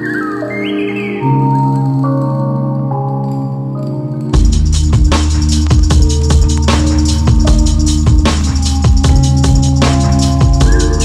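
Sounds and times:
instrumental hip-hop beat: 0:00.0 - 0:11.0.

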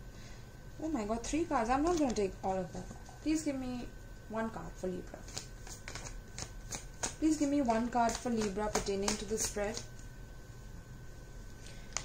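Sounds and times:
cards being shuffled by hand: 0:05.2 - 0:10.1, 0:11.6 - 0:12.0.

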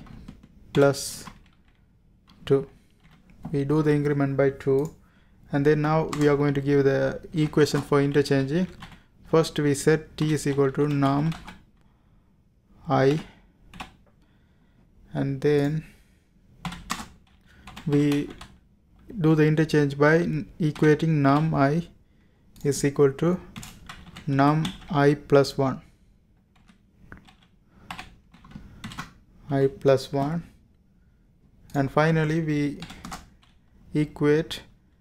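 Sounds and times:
person speaking: 0:00.0 - 0:01.6, 0:02.3 - 0:11.6, 0:12.7 - 0:13.4, 0:15.1 - 0:16.0, 0:17.7 - 0:22.0, 0:22.6 - 0:26.0, 0:29.4 - 0:30.6, 0:31.7 - 0:34.8
keyboard typing: 0:00.0 - 0:05.0, 0:06.0 - 0:09.0, 0:10.0 - 0:11.7, 0:13.1 - 0:14.0, 0:16.6 - 0:18.6, 0:20.7 - 0:21.6, 0:23.5 - 0:25.0, 0:26.5 - 0:29.2, 0:32.8 - 0:33.6.

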